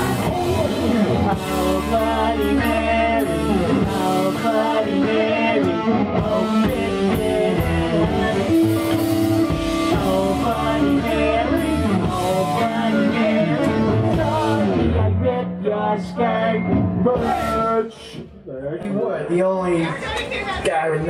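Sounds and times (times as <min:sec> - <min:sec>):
punk rock band playing: 0:00.0 - 0:17.9
person singing into microphone: 0:00.0 - 0:18.2.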